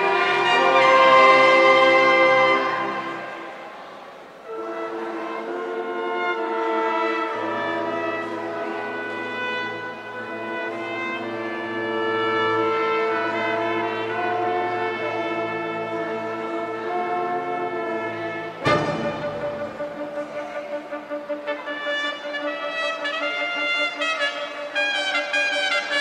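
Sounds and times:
brass section sustained chords: 0:00.0 - 0:26.0.

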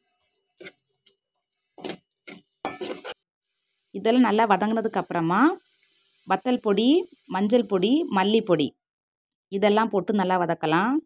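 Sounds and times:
spoon scraping metal pan: 0:01.7 - 0:03.2.

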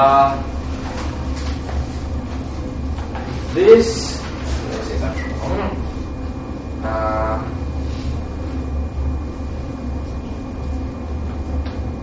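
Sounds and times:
low room hum: 0:00.0 - 0:12.0
man saying uh: 0:06.8 - 0:07.6.

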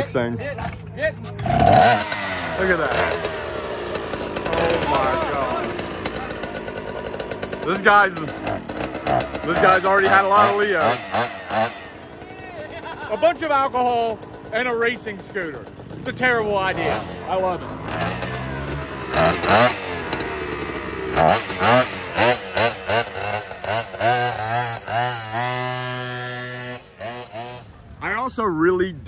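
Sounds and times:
two-stroke scooter engine revving: 0:00.0 - 0:28.0
outdoor noise: 0:00.0 - 0:29.0
man talking: 0:28.0 - 0:29.0.

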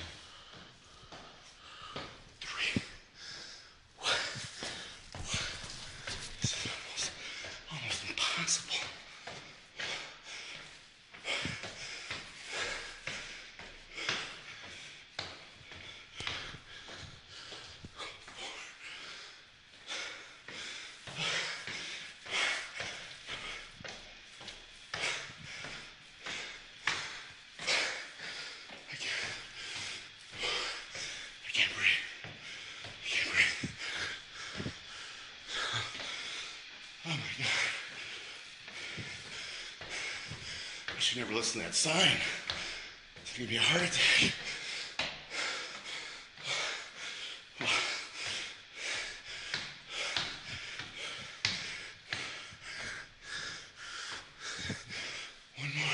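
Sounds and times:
man panting: 0:00.0 - 0:55.9.

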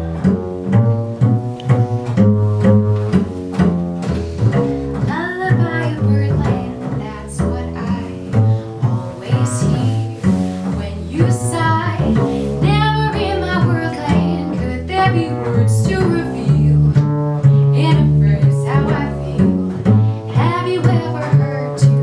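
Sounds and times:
plucked double bass: 0:00.0 - 0:22.0
woman singing: 0:05.0 - 0:17.0, 0:17.7 - 0:19.5, 0:20.3 - 0:22.0.

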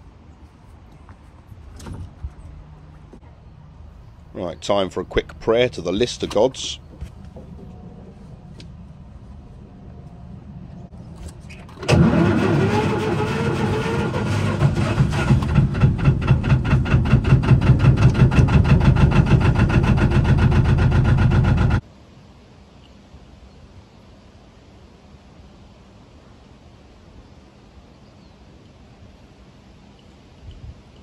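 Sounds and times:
diesel engine starting and idling: 0:09.8 - 0:21.8.

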